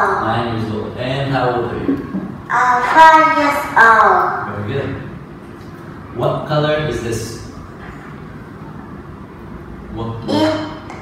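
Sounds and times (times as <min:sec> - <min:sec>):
low room noise rumble: 0:00.0 - 0:11.0.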